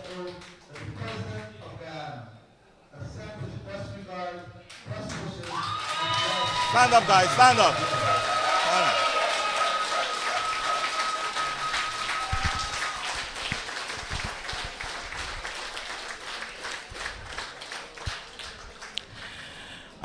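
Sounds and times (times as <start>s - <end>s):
audience applauding: 5.4s - 19.4s.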